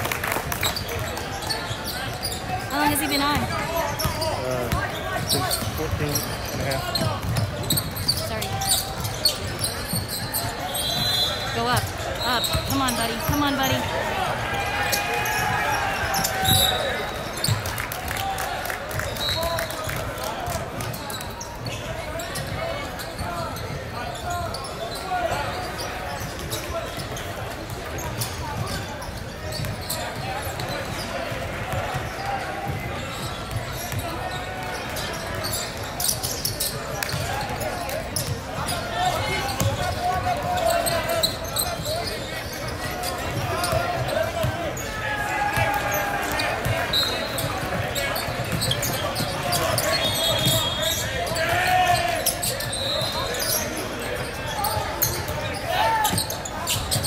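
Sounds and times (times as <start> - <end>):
people calling out and talking: 1.0 - 17.6.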